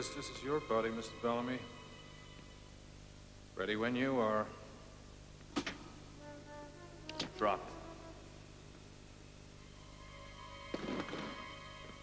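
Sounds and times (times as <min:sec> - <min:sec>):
tense drama score with held chords: 0:00.0 - 0:03.2, 0:09.6 - 0:12.0.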